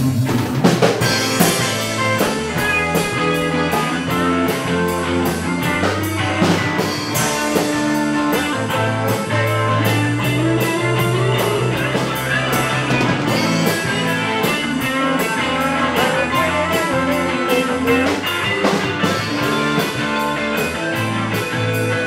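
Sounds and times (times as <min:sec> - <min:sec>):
drum kit beat: 0:00.0 - 0:22.0
electric guitar line: 0:00.0 - 0:22.0.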